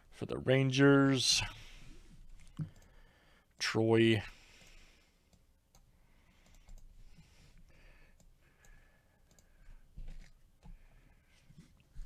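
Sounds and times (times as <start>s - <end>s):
computer mouse clicks: 2.4s - 3.0s, 4.6s - 6.9s, 8.1s - 9.5s.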